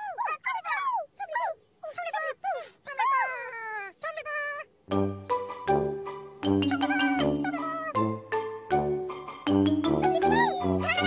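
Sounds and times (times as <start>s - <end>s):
high-pitched squeaky chatter: 6.6s - 8.0s, 10.0s - 11.0s.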